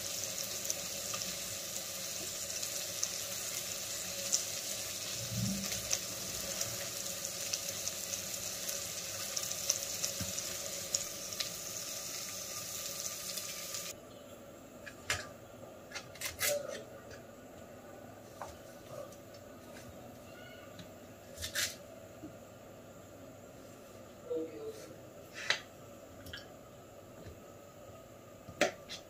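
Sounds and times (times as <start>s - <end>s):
vegetables sizzling in oil: 0.0s - 14.0s.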